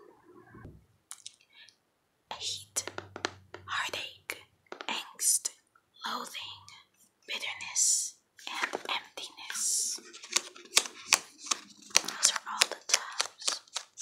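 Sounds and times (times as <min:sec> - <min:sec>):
small mouth clicks: 0:01.1 - 0:01.4
person whispering: 0:02.3 - 0:10.2, 0:12.0 - 0:13.7.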